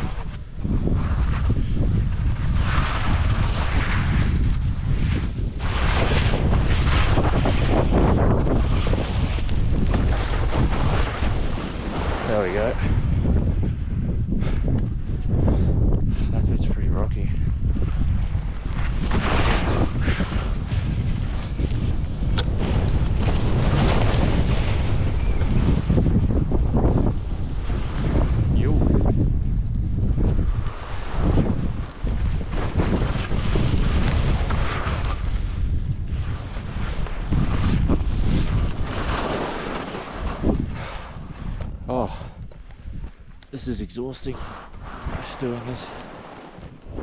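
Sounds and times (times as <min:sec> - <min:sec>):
skis scraping over snow: 0:00.0 - 0:13.5, 0:17.8 - 0:28.9, 0:30.0 - 0:42.1, 0:42.8 - 0:47.0
wind buffeting microphone: 0:00.0 - 0:47.0.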